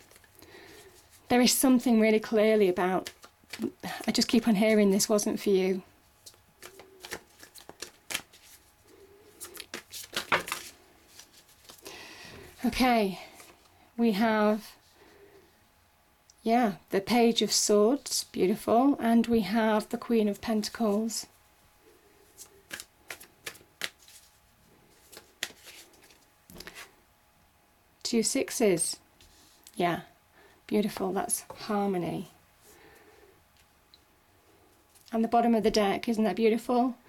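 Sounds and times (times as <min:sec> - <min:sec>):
cards being shuffled: 0:00.0 - 0:00.3, 0:02.7 - 0:05.2, 0:06.2 - 0:08.7, 0:09.3 - 0:11.8, 0:22.3 - 0:26.9.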